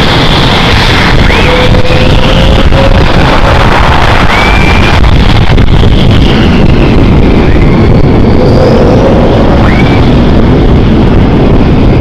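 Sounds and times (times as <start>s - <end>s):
jet engines running: 0.0s - 12.0s.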